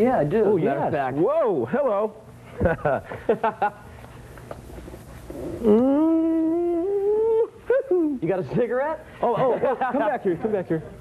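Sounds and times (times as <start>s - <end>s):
vocal howl: 5.4s - 7.6s.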